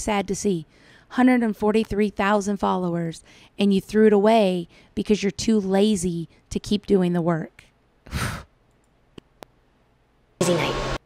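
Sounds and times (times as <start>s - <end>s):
woman sighing: 8.1s - 8.5s.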